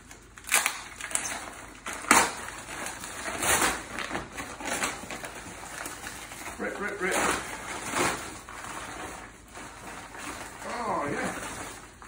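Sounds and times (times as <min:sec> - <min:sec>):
plastic bag tearing and crinkling: 0:00.0 - 0:12.0.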